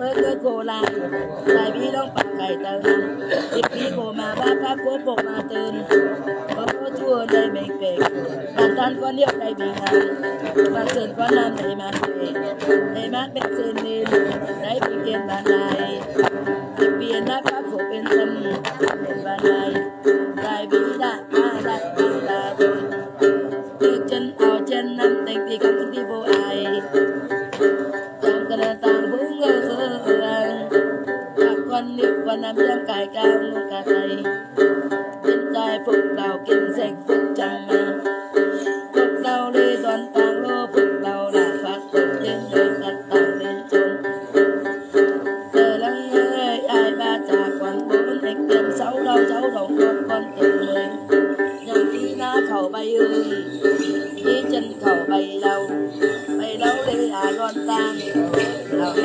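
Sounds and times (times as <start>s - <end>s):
woman singing a chant: 0.0s - 22.9s, 23.8s - 27.1s, 28.3s - 34.4s, 35.3s - 38.0s, 39.0s - 44.0s, 45.5s - 59.0s
long-necked lute plucked: 0.0s - 59.0s.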